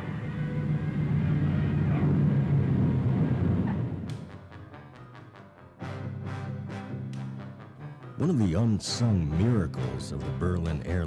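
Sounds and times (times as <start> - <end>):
propeller plane rumble: 0.0 - 11.0.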